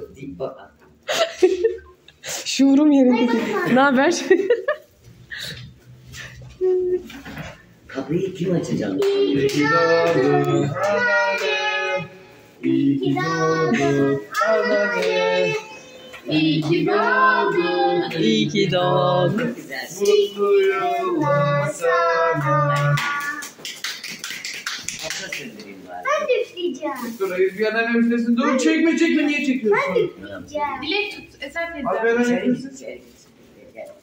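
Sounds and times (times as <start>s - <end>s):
group singing birthday song: 7.0s - 24.0s.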